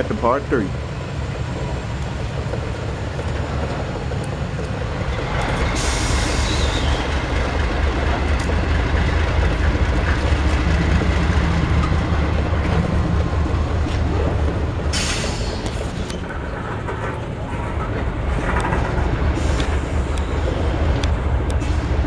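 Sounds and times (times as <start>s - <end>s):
diesel locomotive rumble: 0.0s - 22.0s
train wheels clattering on rails: 0.0s - 22.0s.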